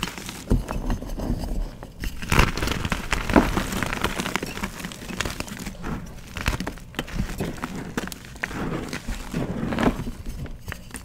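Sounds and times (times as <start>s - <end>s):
chalk crushed by hand: 2.1s - 11.0s.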